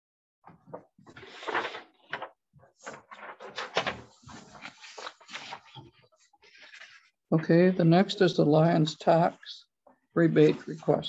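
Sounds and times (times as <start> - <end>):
paper rustling and shuffling: 0.6 - 7.2.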